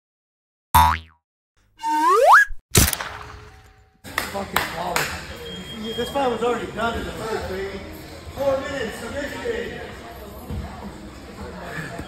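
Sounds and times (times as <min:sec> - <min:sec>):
upward gliding tone: 0:01.8 - 0:02.6.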